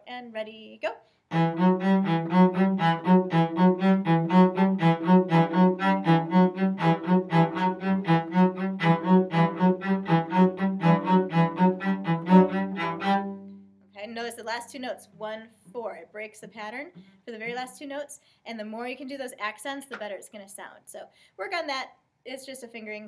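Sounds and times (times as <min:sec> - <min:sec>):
speech: 0:00.0 - 0:01.0, 0:14.0 - 0:23.0
cello playing short bow strokes: 0:01.3 - 0:13.7.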